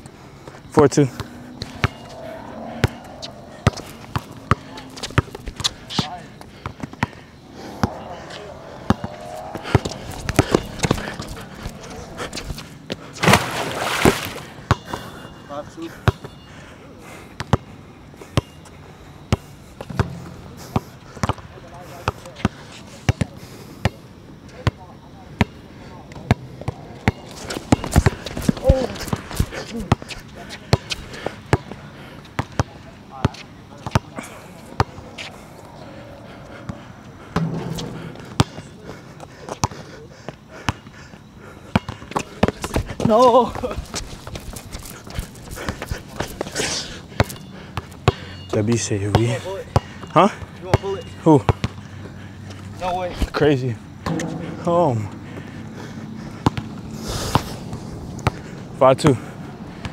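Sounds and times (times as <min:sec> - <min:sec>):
basketball bouncing on hard court: 0:01.6 - 0:02.1, 0:37.4 - 0:38.6, 0:54.1 - 0:54.6.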